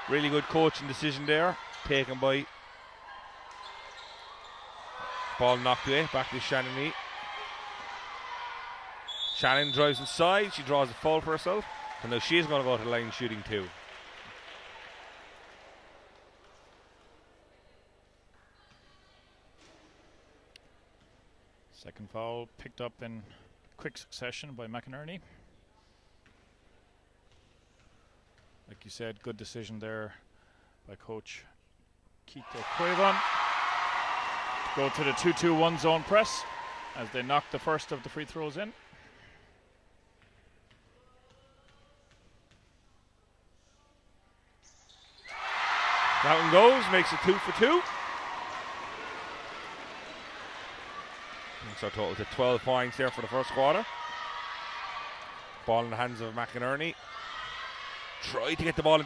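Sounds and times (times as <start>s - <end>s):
crowd applause: 32.6s - 38.0s, 45.4s - 52.6s.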